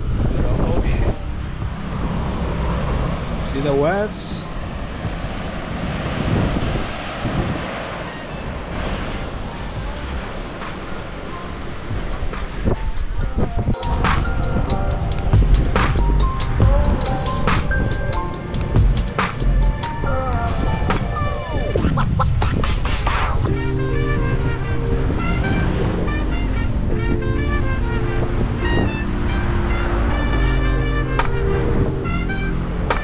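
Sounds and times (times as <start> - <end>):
sea: 0.0 - 33.0
traffic noise: 0.0 - 33.0
wind buffeting microphone: 0.0 - 33.0
background music with steady beat: 1.0 - 2.5, 5.0 - 5.4, 9.8 - 33.0.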